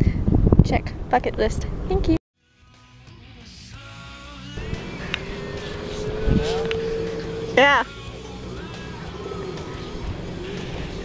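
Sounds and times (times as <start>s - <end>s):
wind on microphone: 0.0s - 2.2s, 4.6s - 7.9s
distant motor hum: 4.6s - 11.0s.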